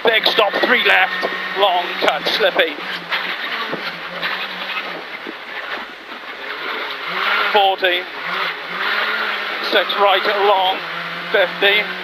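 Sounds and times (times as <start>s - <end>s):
car engine: 0.0s - 12.0s
tyres on gravel: 0.0s - 12.0s
stones rattling against underbody: 2.0s - 6.8s.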